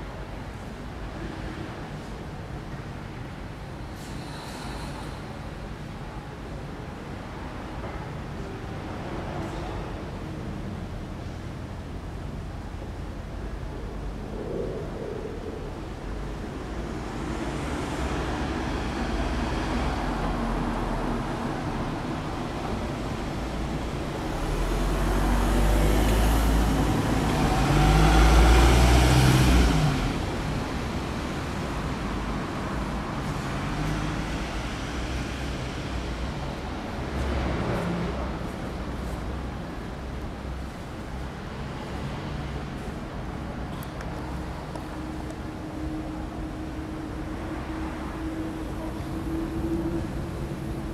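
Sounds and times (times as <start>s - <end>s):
road traffic rumble: 0.0s - 50.9s.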